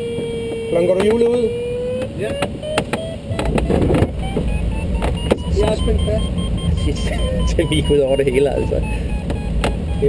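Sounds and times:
sharp clicks: 2.0s - 6.9s
airflow noise: 2.3s - 10.0s
variometer short pitched beeps: 2.6s - 10.0s.

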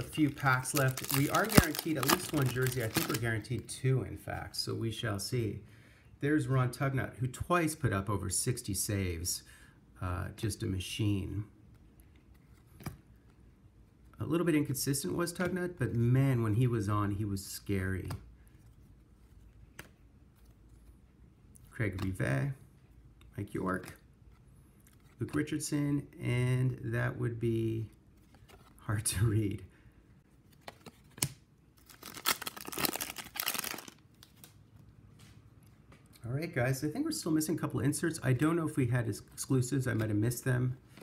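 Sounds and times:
foil wrapper crinkling and tearing: 0.0s - 3.3s, 31.8s - 34.3s
handling paper cards: 0.0s - 3.4s, 17.8s - 22.6s, 23.2s - 25.7s, 30.3s - 36.2s.

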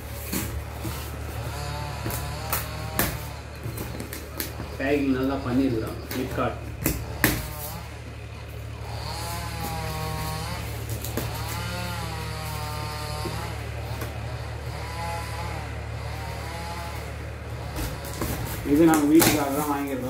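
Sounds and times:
small engine revving: 0.0s - 4.8s, 5.4s - 20.0s
steady low hum: 0.0s - 20.0s.

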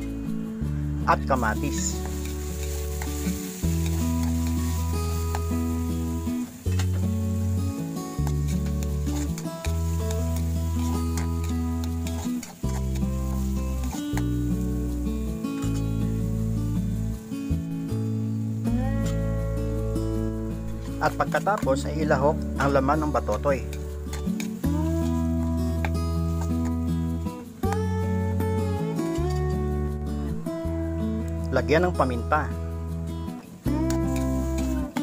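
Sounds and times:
background music: 0.0s - 35.0s
vegetables sizzling in oil: 1.2s - 29.4s, 33.4s - 35.0s
metal spatula clicking and scraping: 2.0s - 5.5s, 8.2s - 14.3s, 23.7s - 24.6s.

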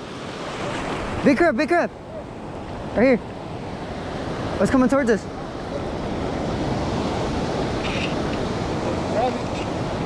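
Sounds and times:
ocean surf washing: 0.0s - 10.0s.

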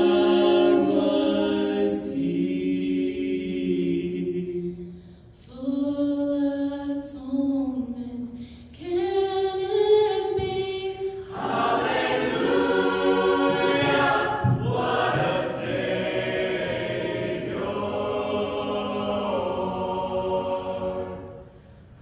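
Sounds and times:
mixed choir singing: 0.0s - 4.9s, 11.2s - 21.8s
solo voices singing: 0.0s - 6.0s, 10.2s - 21.9s.

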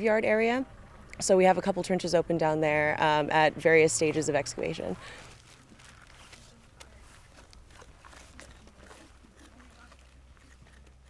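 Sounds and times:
steady low hum: 0.0s - 11.0s
soft clicks and rustles: 5.0s - 11.0s.

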